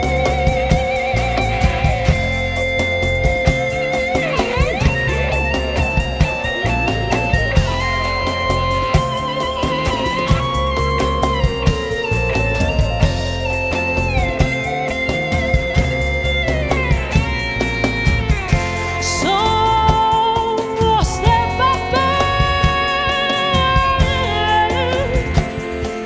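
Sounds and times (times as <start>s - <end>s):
live rock band playing: 0.0s - 26.0s
sliding electric guitar lead notes: 0.0s - 26.0s.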